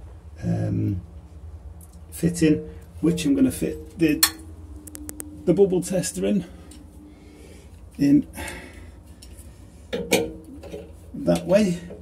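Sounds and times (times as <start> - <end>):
faint low rumble: 0.0 - 9.9
sharp click: 4.2 - 5.3.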